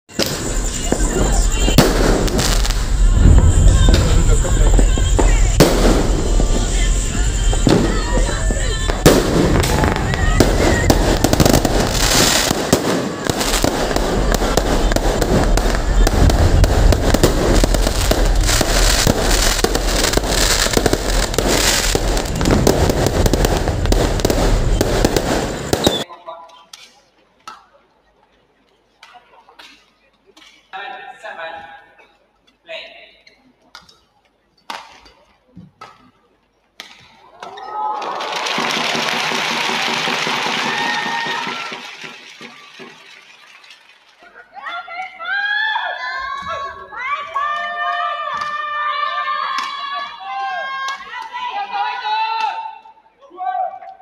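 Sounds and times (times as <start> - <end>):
fireworks bangs and crackles: 0.1 - 26.1, 38.2 - 44.1
voices: 0.2 - 24.9.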